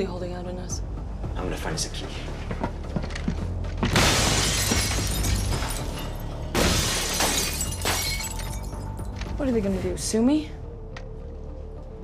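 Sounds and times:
glass shattering: 3.9 - 9.0.

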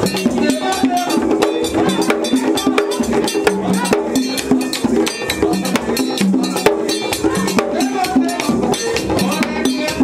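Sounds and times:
drums: 0.0 - 10.0
rapid metal bell strikes: 0.0 - 10.0
voices singing: 0.0 - 10.0.

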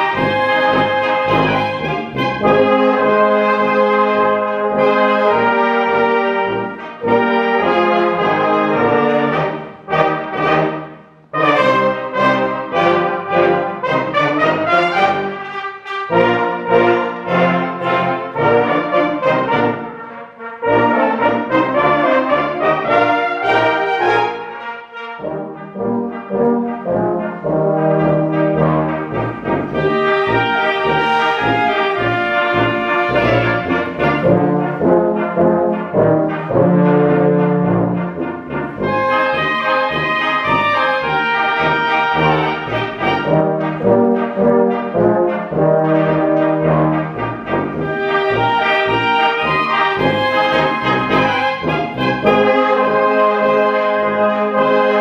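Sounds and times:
brass band playing march: 0.0 - 55.0.

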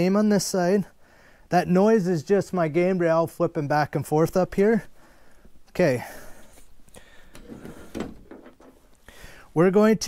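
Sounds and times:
metal gambrel knocking and rattling: 7.4 - 8.8.

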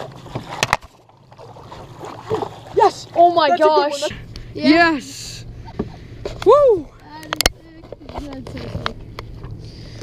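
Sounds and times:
boat motor humming: 0.0 - 10.0.

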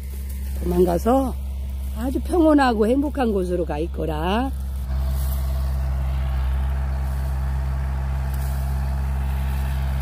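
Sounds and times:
farm machine engine humming: 0.0 - 10.0.

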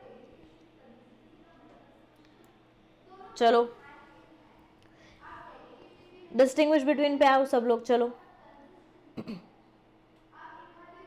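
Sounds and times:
woman clearing her throat: 9.2 - 9.5.

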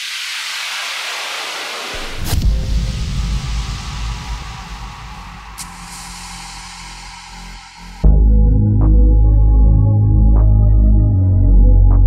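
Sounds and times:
hissing whoosh: 0.0 - 8.1
deep boom with sharp hit: 2.0 - 8.9.

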